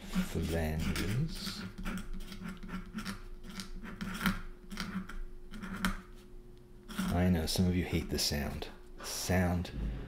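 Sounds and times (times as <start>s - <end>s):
pen nib scratching on paper: 0.1s - 6.1s.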